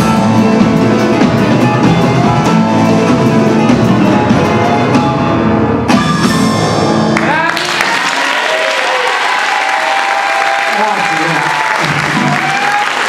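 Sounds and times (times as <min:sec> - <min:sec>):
drum kit steady beat: 0:00.0 - 0:05.3.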